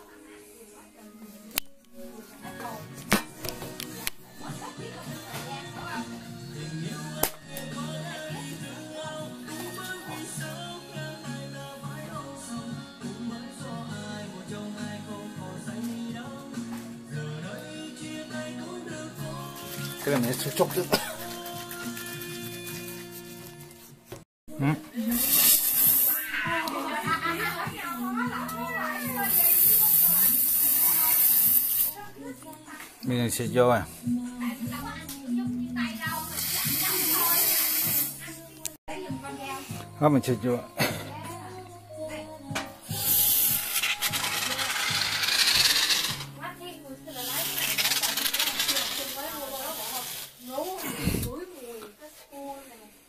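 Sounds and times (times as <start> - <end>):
aerosol can hissing: 25.0 - 26.4, 29.1 - 32.1, 36.1 - 38.3, 42.8 - 46.3, 47.1 - 51.3.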